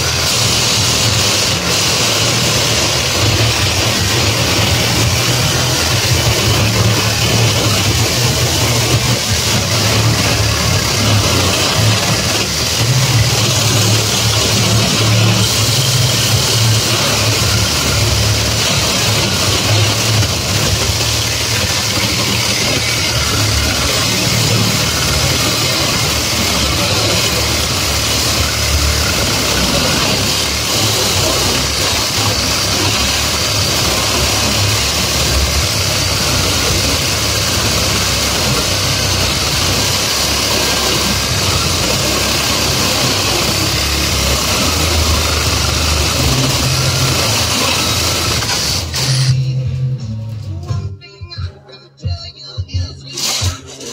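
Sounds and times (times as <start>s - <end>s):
cordless saw cutting steel wire: 0.0s - 49.4s, 53.1s - 53.9s.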